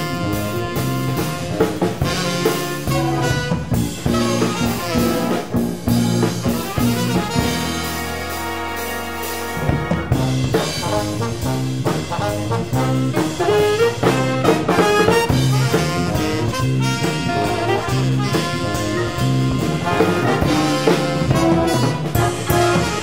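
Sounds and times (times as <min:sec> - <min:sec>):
big jazz band playing: 0:00.0 - 0:23.0
trumpet and trombone hits: 0:00.0 - 0:23.0.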